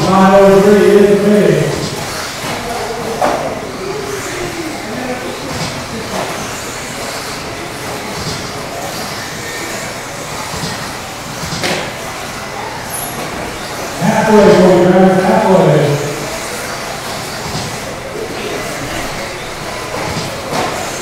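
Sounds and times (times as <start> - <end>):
background chatter: 0.0 - 21.0
rc car motors and tyres: 0.0 - 21.0.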